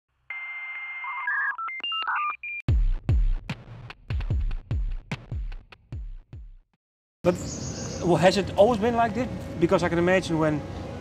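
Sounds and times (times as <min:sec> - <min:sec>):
electronic dialing beeps: 0:00.3 - 0:02.6.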